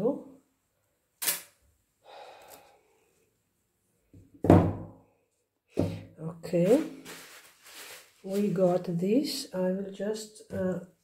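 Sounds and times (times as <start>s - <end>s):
sharp click: 1.2s - 1.5s
canvas rustling: 6.6s - 9.0s.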